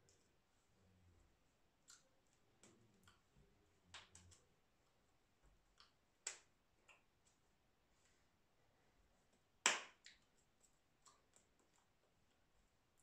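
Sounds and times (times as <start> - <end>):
hands clapping: 6.3 - 7.0, 9.6 - 10.2.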